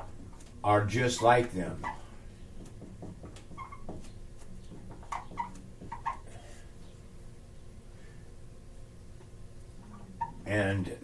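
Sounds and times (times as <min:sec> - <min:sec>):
marker squeaking on whiteboard: 0:01.2 - 0:06.5, 0:09.8 - 0:10.5.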